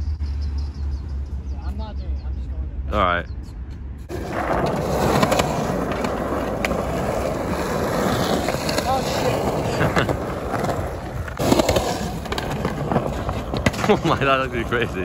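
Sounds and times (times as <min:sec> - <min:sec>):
skateboard wheels rolling on concrete: 0:04.0 - 0:15.0.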